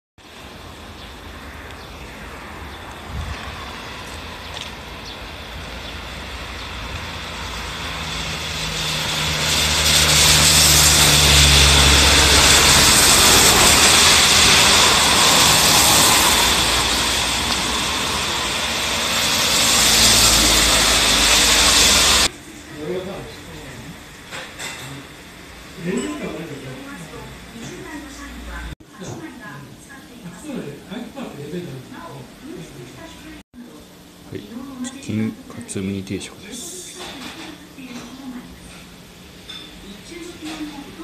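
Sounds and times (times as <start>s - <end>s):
low engine hum: 2.8s - 22.3s
tyres hissing on wet road: 3.3s - 22.3s.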